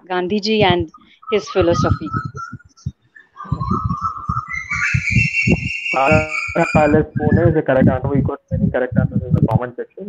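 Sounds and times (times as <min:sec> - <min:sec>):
soft low thumps: 0:00.0 - 0:09.8
high whistling tone: 0:00.4 - 0:09.0.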